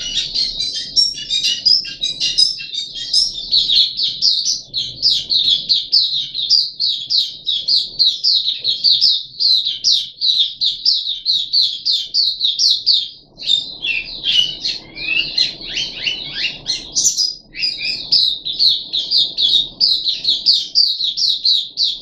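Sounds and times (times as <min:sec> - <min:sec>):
bird singing rapid high chirps: 0:00.0 - 0:22.0.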